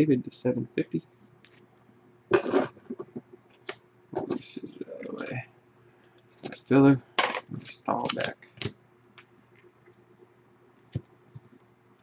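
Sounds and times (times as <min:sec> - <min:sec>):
person speaking: 0:04.2 - 0:05.5, 0:06.4 - 0:08.5.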